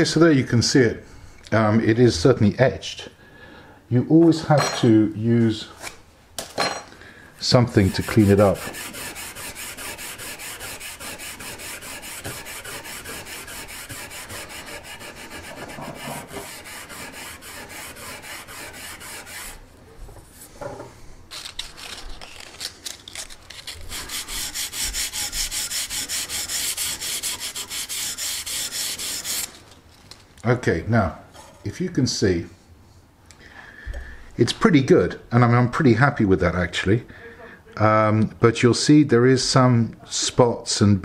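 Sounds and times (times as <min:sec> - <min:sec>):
abrasive pad scrubbing steel blade: 0:07.6 - 0:19.6, 0:23.6 - 0:29.6.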